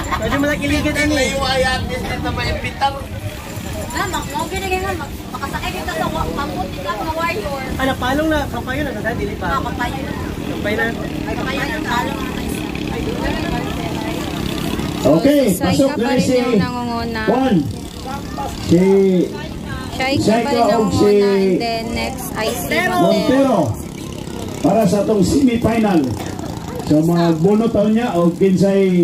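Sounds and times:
people talking and calling out: 0.0s - 29.0s.

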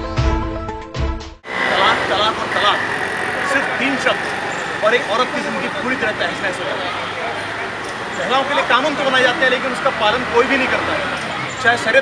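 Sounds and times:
street traffic noise: 1.4s - 12.0s
man speaking: 1.5s - 12.0s
people talking in background: 1.5s - 12.0s.

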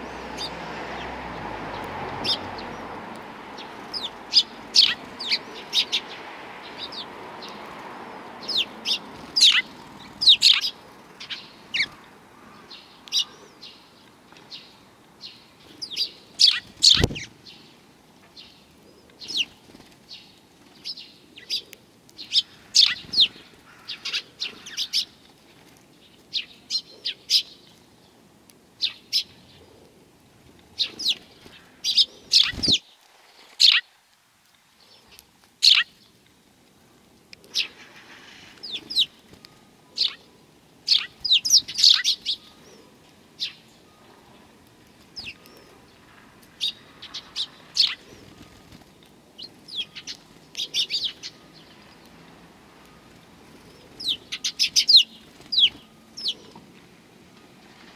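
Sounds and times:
sparrows chirping: 0.0s - 29.9s, 30.6s - 33.9s, 34.8s - 36.2s, 37.4s - 57.9s.

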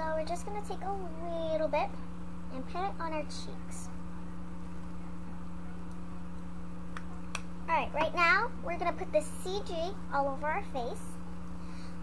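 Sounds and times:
girl speaking: 0.0s - 4.0s, 7.7s - 11.2s
low electrical hum: 0.0s - 12.0s.

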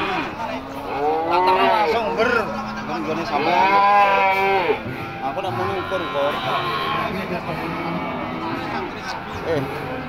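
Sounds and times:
bull mooing: 0.0s - 2.0s, 3.2s - 8.8s.

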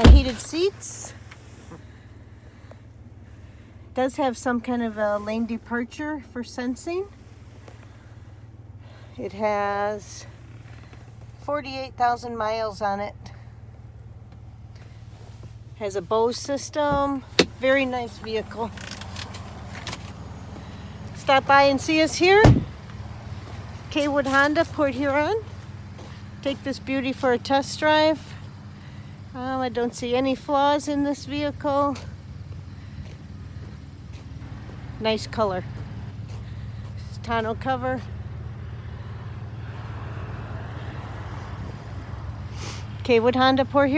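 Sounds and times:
engine idling: 0.0s - 43.9s.

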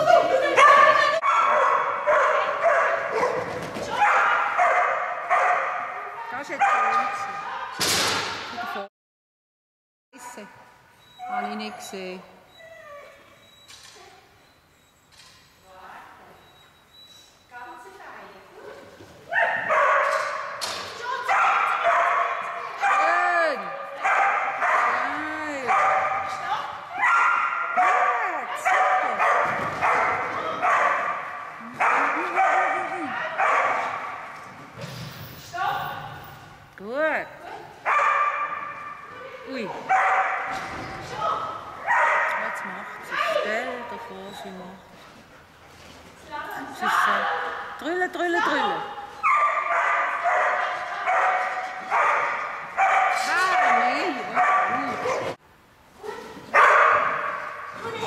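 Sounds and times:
dog barking excitedly: 0.2s - 7.6s, 19.3s - 23.2s, 23.8s - 34.4s, 37.8s - 39.0s, 39.8s - 40.6s, 41.8s - 43.6s, 48.5s - 55.4s, 56.0s - 58.0s.

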